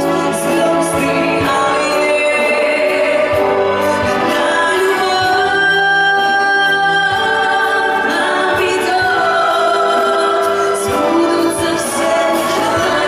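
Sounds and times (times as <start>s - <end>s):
symphony orchestra playing: 0.0s - 13.0s.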